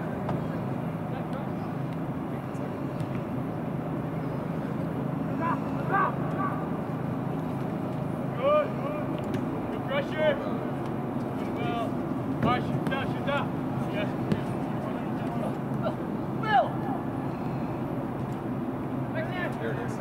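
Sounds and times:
players shouting: 5.3 - 6.8, 12.4 - 17.1.

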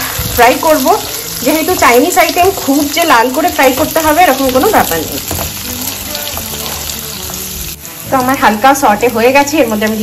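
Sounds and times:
vegetables sizzling in oil: 0.0 - 10.0.

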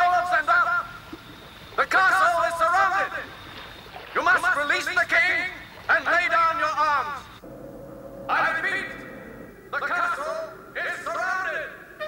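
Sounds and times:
steady low drone: 7.4 - 12.0
man's voice: 8.3 - 9.1, 9.7 - 11.8.

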